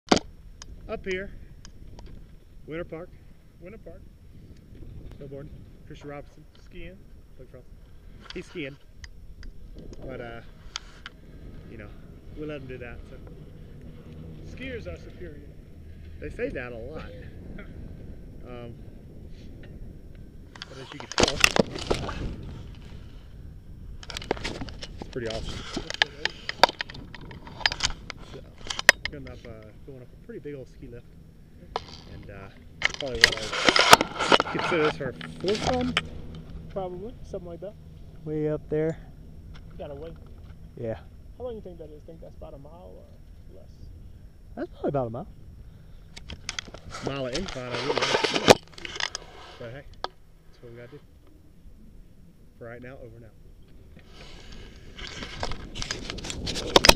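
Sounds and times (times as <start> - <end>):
camera handling noise: 32.8 - 36.4.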